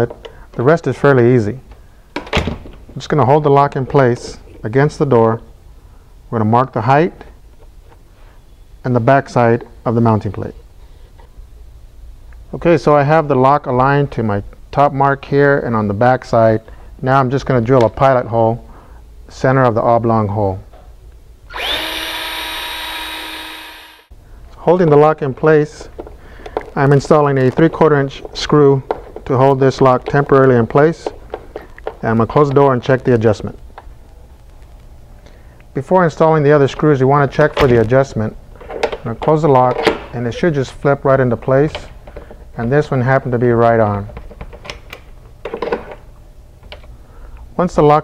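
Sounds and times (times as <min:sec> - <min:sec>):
cordless drill whining: 0:21.5 - 0:24.1.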